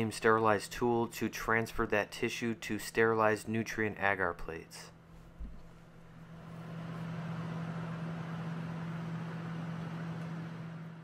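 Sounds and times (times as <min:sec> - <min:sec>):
blower humming with air hiss: 0:05.0 - 0:11.0.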